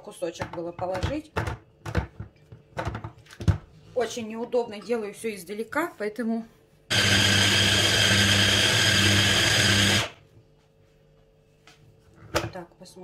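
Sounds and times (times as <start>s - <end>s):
hand blender motor chopping: 6.9s - 10.2s.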